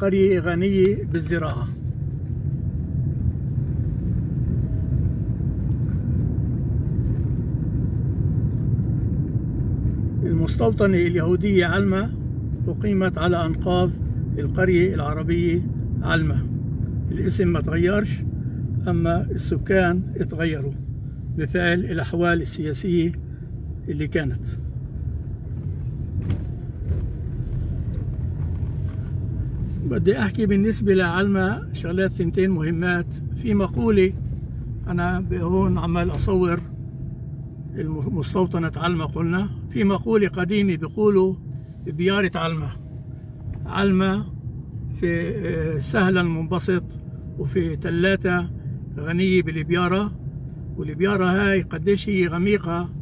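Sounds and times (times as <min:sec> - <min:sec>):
car cabin road and engine rumble: 0:00.0 - 0:53.0.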